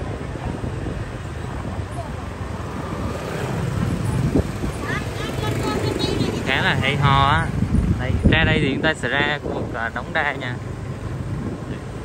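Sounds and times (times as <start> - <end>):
motorbikes rumbling by: 0.0 - 12.0.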